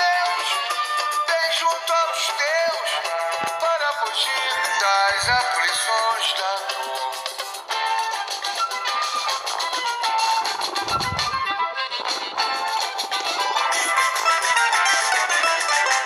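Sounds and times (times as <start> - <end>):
song with melodic lead line: 0.0 - 16.0.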